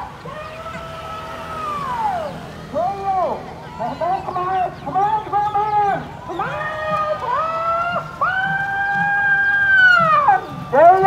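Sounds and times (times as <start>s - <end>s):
roosters crowing: 0.0s - 11.0s.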